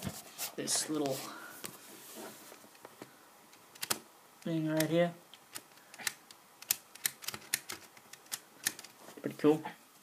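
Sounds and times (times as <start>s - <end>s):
laptop switch clicking: 3.7s - 4.0s.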